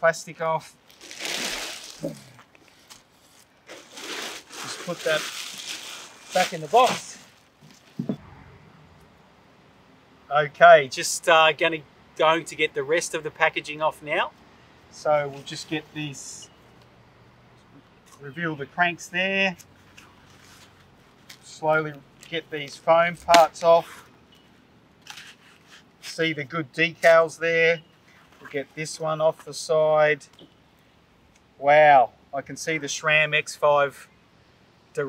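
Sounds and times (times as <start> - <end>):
faint background hiss: 0.0 - 35.0
foam packaging crinkling: 0.8 - 8.0
soft scrapes: 1.0 - 8.3.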